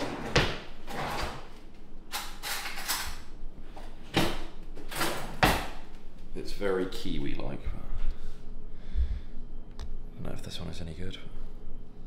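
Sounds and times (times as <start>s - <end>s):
drawer opening and shutting: 0.0s - 1.6s
metal cutlery clattering: 2.1s - 3.2s.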